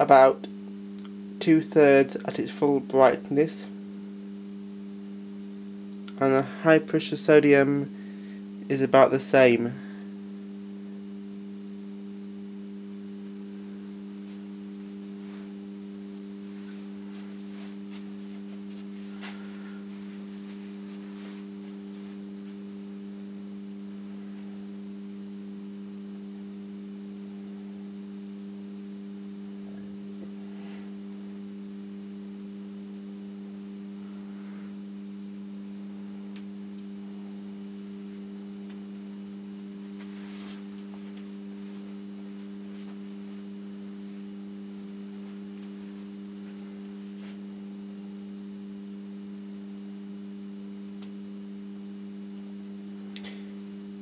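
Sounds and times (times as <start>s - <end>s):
lamp ballasts humming: 7.0s - 54.0s.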